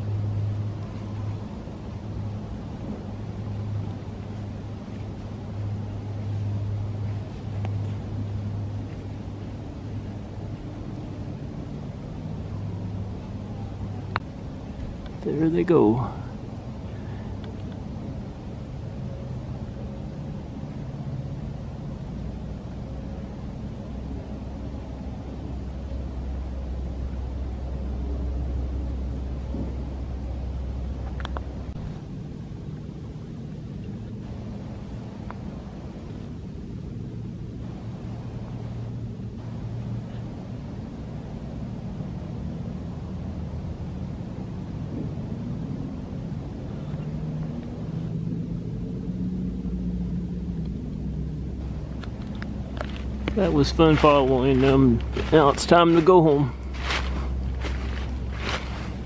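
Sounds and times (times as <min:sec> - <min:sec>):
distant engines rumbling: 0:00.0 - 0:59.0.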